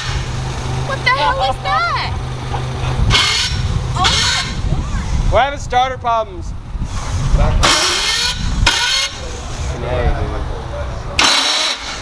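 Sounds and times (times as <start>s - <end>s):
voices: 0.8s - 6.6s, 8.8s - 12.0s
starter cranking engine: 11.2s - 12.0s.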